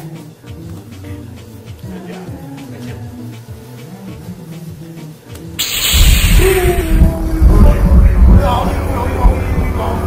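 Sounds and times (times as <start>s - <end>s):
soft background music: 0.0s - 10.0s
hissing zap sound effect: 5.6s - 7.4s.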